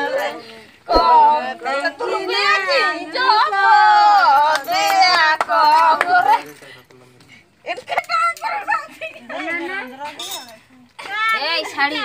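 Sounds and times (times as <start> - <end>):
people talking: 0.0 - 6.4.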